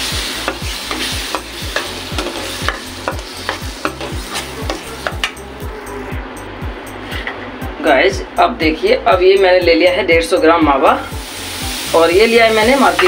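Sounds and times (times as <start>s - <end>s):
ghee sizzling: 0.0s - 5.7s, 11.1s - 13.0s.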